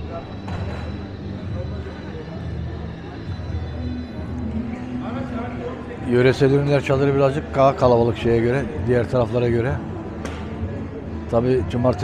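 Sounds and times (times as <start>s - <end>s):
distant voices chattering: 0.0s - 12.0s.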